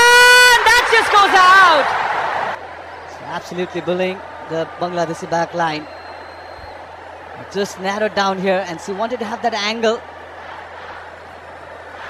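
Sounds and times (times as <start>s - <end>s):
commentator shouting excitedly: 0.0s - 1.9s
stadium crowd noise: 0.0s - 12.0s.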